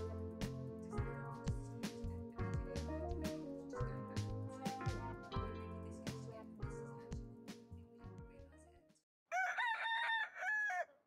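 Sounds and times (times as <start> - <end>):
rooster crowing: 9.3 - 11.0.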